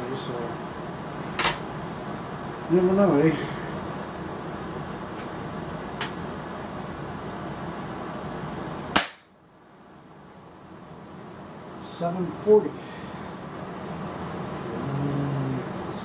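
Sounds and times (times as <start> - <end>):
air rifle shot crack: 8.9 - 9.4.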